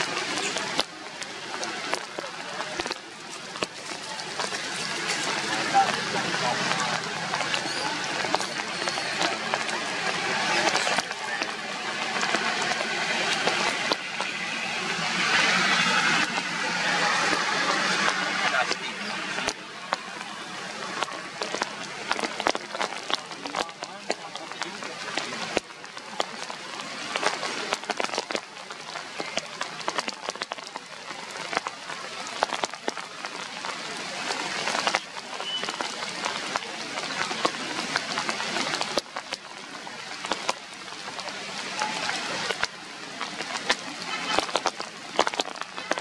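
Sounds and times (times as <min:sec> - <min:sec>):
rain on leaves: 0:00.0 - 0:46.0.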